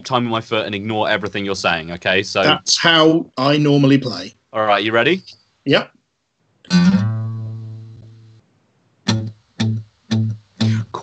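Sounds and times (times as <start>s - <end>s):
acoustic guitar chords strummed: 6.7s - 8.4s, 9.1s - 11.0s.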